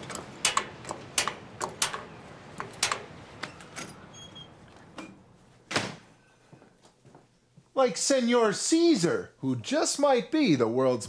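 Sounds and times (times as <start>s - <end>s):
grill knobs clicking: 0.0s - 4.1s.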